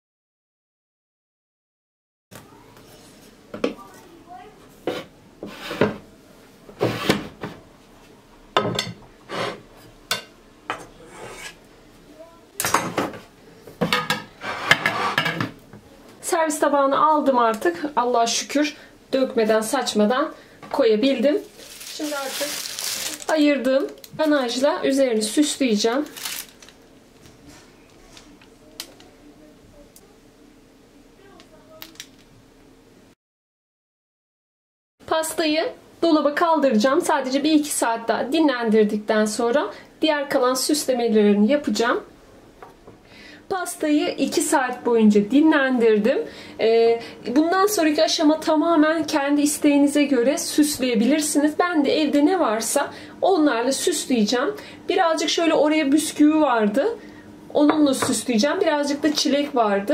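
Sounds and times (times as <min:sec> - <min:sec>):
metal spatula scraping plate: 0:09.3 - 0:09.6, 0:11.0 - 0:11.6, 0:14.3 - 0:15.4
piping bag clicks and squishing: 0:26.0 - 0:26.8.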